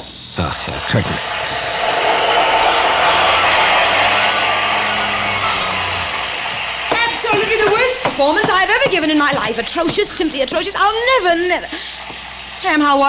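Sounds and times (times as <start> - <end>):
audience applauding: 0.4 - 13.0.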